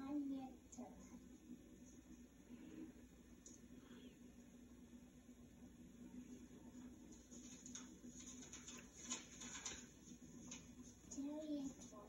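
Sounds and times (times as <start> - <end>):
low steady hum: 0.0 - 12.0
book pages turning: 7.1 - 12.0.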